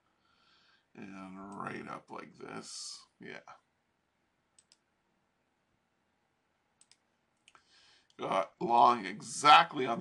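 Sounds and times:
computer mouse clicks: 0:04.6 - 0:04.9, 0:06.8 - 0:07.6.

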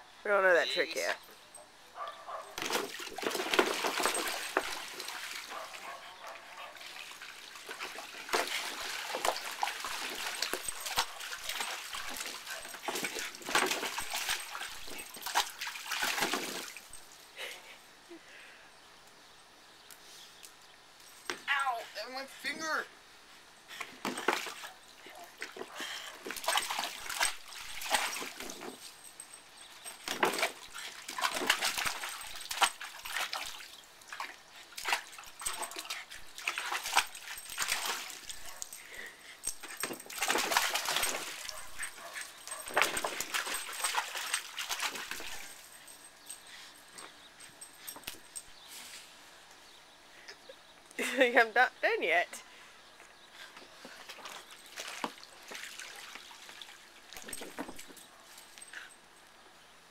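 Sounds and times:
water splashing in a pool: 0:02.6 - 0:17.1, 0:24.0 - 0:28.8, 0:30.0 - 0:38.7, 0:39.8 - 0:45.7, 0:54.1 - 0:57.9.

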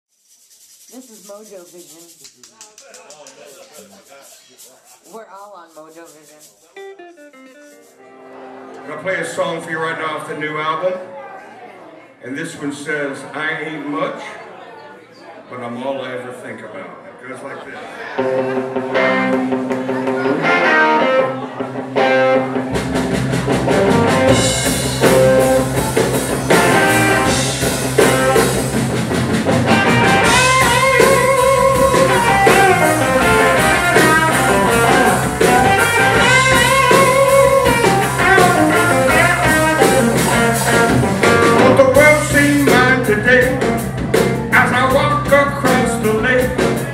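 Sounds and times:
electric guitar riff: 0:06.8 - 0:09.2, 0:18.2 - 0:45.9
bass guitar: 0:18.2 - 0:46.9
drum kit: 0:18.2 - 0:46.9.

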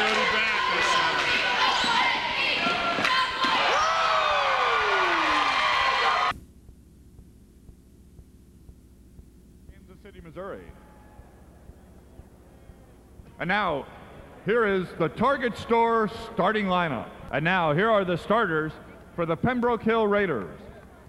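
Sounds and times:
crowd voices and shouting: 0:00.0 - 0:06.3
low tape hiss: 0:03.9 - 0:21.0.

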